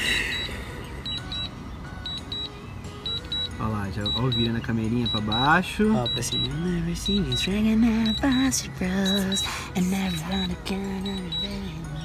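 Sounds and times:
short high beeps: 3.1s - 9.5s.

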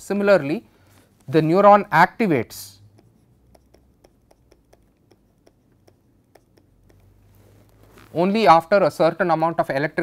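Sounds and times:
stylus clicking on pen tablet: 2.8s - 7.8s.

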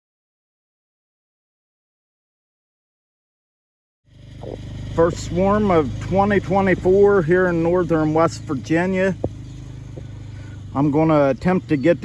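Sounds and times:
honeybee swarm humming: 4.3s - 12.0s.

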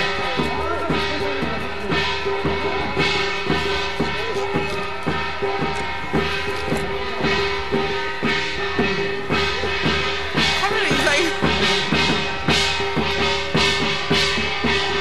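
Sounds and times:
drums beating: 0.0s - 15.0s.

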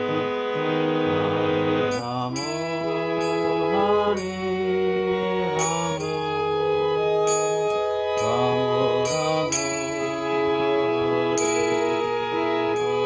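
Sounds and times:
harmonium playing slow melody: 0.0s - 13.0s.

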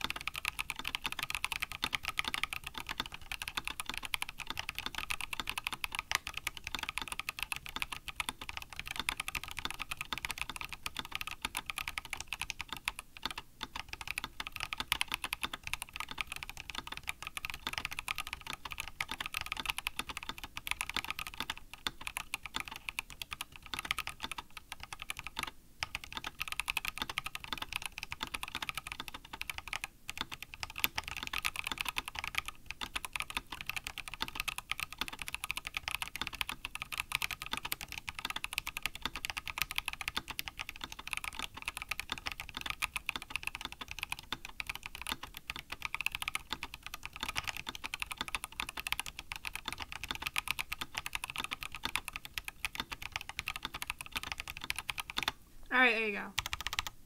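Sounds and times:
mechanical keyboard typing: 0.0s - 57.0s.

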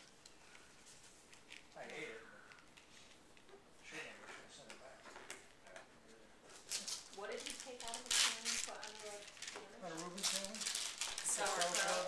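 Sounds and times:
wrapping paper rustling and tearing: 6.5s - 12.0s
people talking: 11.3s - 12.0s.

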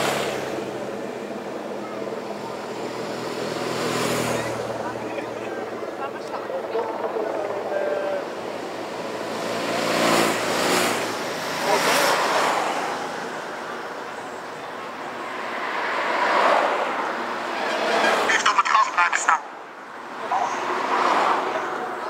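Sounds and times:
race cars passing by: 0.0s - 22.0s.

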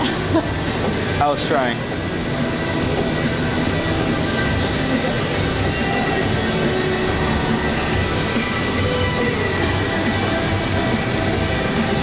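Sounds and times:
elliptical trainer rumbling: 0.0s - 12.0s.

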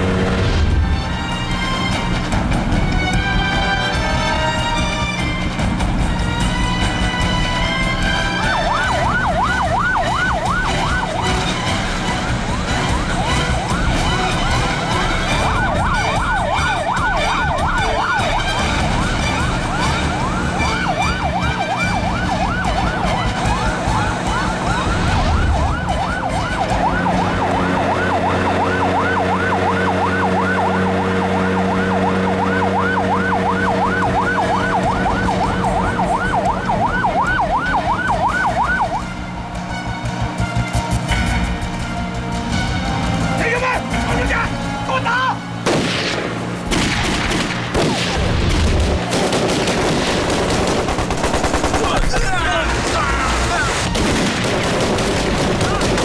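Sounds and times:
boat siren wailing: 0.0s - 45.8s, 51.3s - 56.0s.

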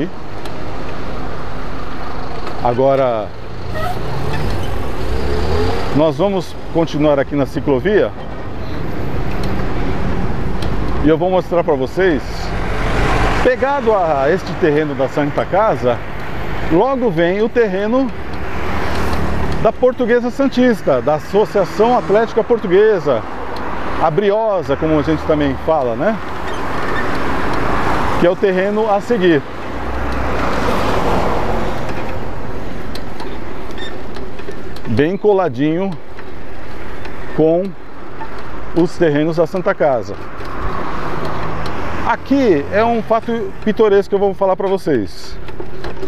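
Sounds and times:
rumble of passing cars: 0.0s - 46.0s
vehicle engine accelerating: 3.3s - 6.8s
car passing by: 3.6s - 6.0s, 12.4s - 13.9s, 29.7s - 32.1s.

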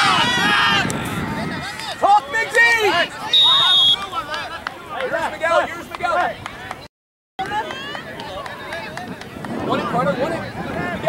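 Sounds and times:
spectators and players shouting: 0.0s - 6.8s, 7.4s - 11.0s
referee's whistle blast: 3.3s - 4.1s.

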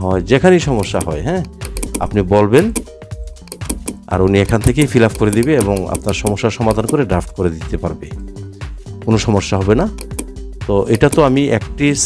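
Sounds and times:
computer keyboard typing: 0.8s - 7.1s, 9.9s - 10.3s, 10.9s - 11.3s.

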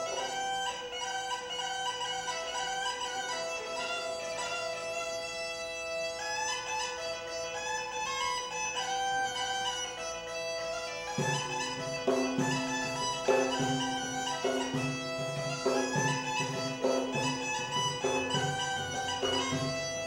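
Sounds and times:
bagpipe drone: 0.0s - 20.0s
bagpipe playing folk melody: 0.0s - 20.0s.

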